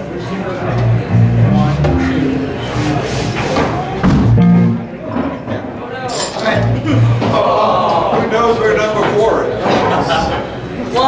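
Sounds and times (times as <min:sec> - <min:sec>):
electric bass notes: 0:00.6 - 0:03.0, 0:04.0 - 0:05.4.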